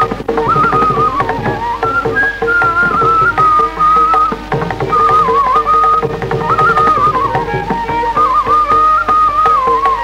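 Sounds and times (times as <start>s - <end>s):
bamboo flute melody: 0.0s - 10.0s
hand drum strokes: 0.0s - 10.0s.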